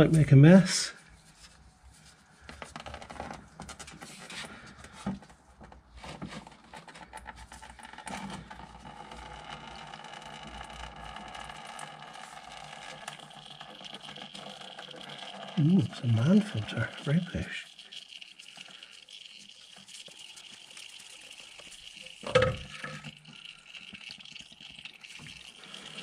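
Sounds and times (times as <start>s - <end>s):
oil filter scraping and clicking: 1.2s - 26.0s.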